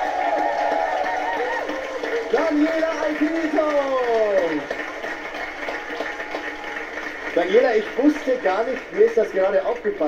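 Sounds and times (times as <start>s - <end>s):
studio audience clapping: 0.0s - 10.0s.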